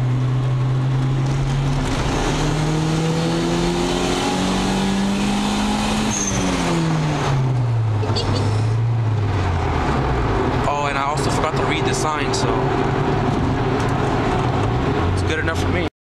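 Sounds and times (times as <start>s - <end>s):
car engine revving: 0.0s - 15.9s.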